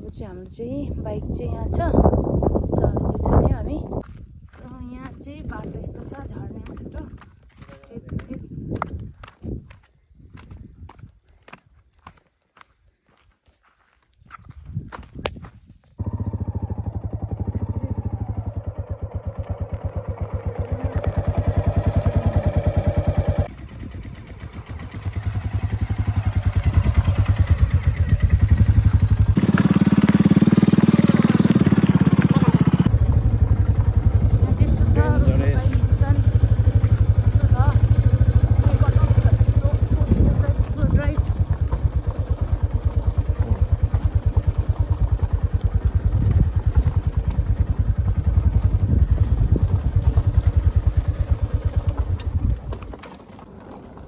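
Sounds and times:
motorcycle engine running: 0:16.0 - 0:54.0.

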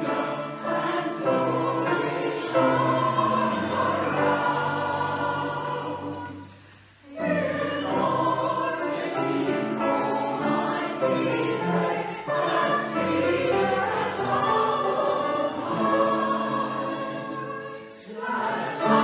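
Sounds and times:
mixed choir singing a carol: 0:00.0 - 0:19.0.

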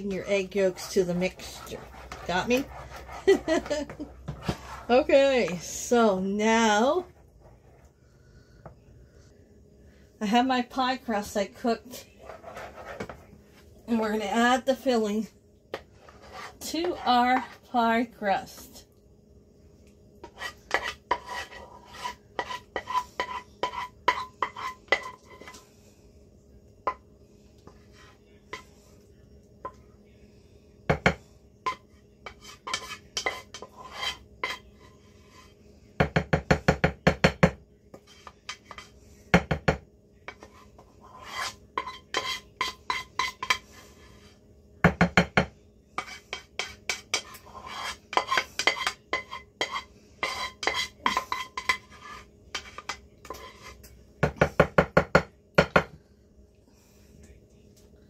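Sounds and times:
utensil scraping metal saucepan: 0:00.0 - 0:07.9, 0:11.1 - 0:13.3, 0:13.9 - 0:18.7, 0:20.2 - 0:25.7, 0:31.6 - 0:35.6, 0:37.9 - 0:39.0, 0:40.2 - 0:44.4, 0:46.0 - 0:53.9.

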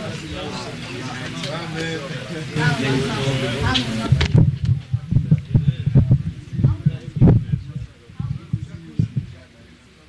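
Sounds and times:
muffled talk: 0:00.0 - 0:10.0
low thumps: 0:03.6 - 0:09.5.

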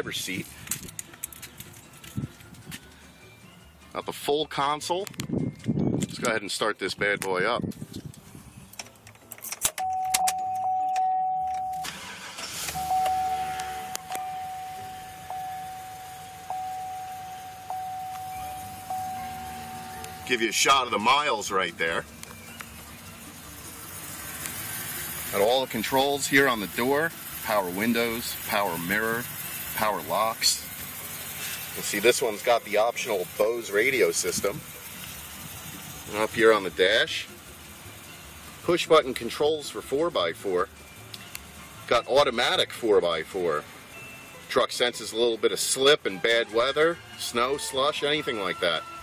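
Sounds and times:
truck engine idling: 0:11.6 - 0:49.0.

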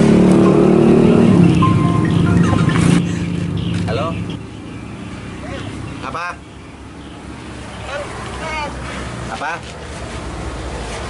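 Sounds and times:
man talking on phone: 0:06.0 - 0:06.4.

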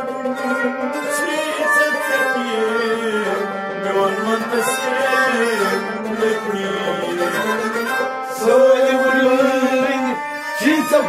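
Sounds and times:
bowed and plucked strings: 0:00.0 - 0:11.0
harmonium chords: 0:00.0 - 0:11.0
person singing: 0:00.0 - 0:11.0.

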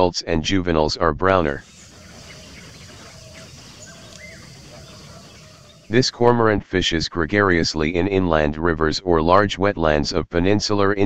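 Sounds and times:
distant bird calls: 0:01.5 - 0:06.1.

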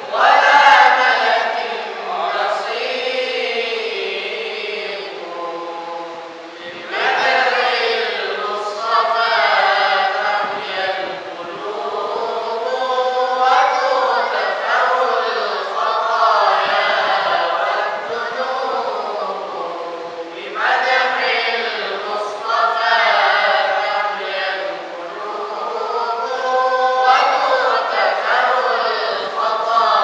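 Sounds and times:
men chanting together: 0:00.0 - 0:30.0.

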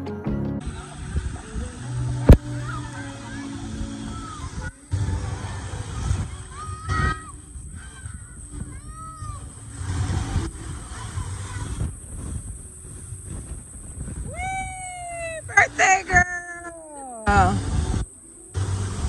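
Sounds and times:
low background rumble: 0:00.3 - 0:19.0
children shouting and squealing: 0:02.4 - 0:12.4, 0:14.1 - 0:17.4
children shrieking: 0:06.4 - 0:09.5, 0:14.3 - 0:17.3
child calling out: 0:14.3 - 0:17.3.

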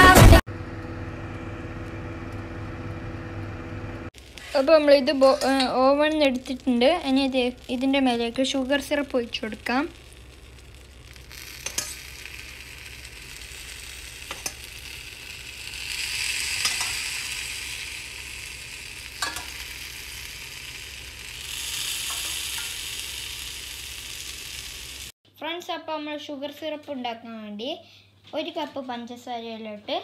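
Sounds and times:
syrup sizzling on hot pastry: 0:04.2 - 0:25.2.

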